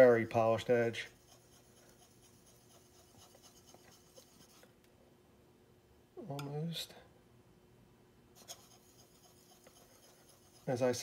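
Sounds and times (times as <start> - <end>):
chisel scraping on whetstone: 0.8 - 4.7, 8.4 - 11.0.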